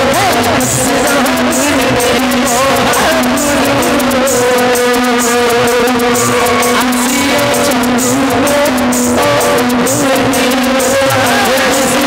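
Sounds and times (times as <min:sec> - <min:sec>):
metallic percussion hits: 0:00.0 - 0:12.0.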